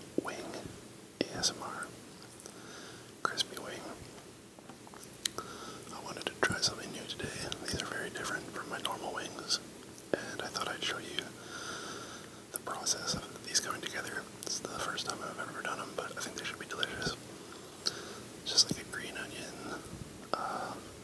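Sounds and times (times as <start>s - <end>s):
person whispering: 0.2s - 1.9s, 3.2s - 4.0s, 5.9s - 11.4s, 12.5s - 17.2s, 17.8s - 21.0s
mouth clicks and lip smacks: 4.9s - 5.4s.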